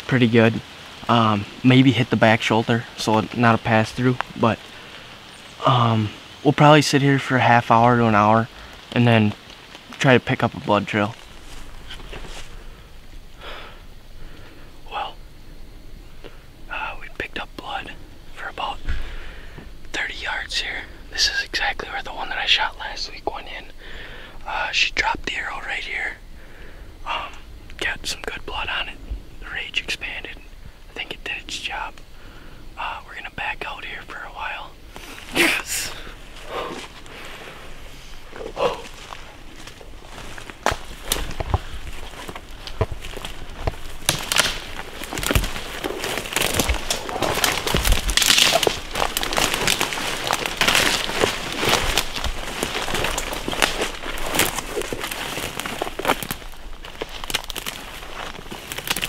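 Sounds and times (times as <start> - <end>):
twigs crackling underfoot: 0.0 - 15.3, 16.0 - 26.1, 27.1 - 59.0
leaves and brush rustling: 0.0 - 59.0
footsteps through undergrowth: 10.8 - 13.4, 34.5 - 59.0.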